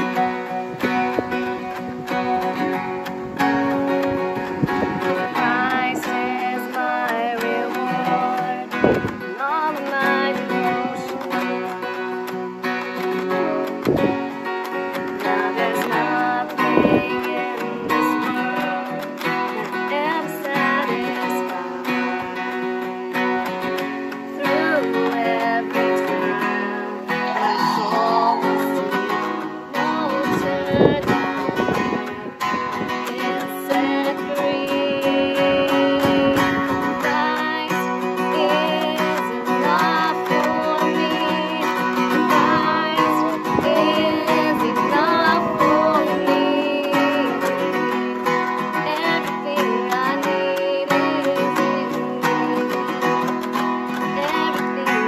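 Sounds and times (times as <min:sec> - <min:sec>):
acoustic guitar strumming: 0:00.0 - 0:55.0
woman singing: 0:00.0 - 0:55.0.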